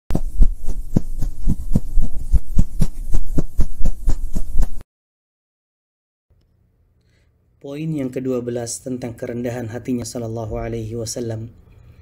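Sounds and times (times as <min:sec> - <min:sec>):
rhythmic deep thumps: 0:00.1 - 0:04.7.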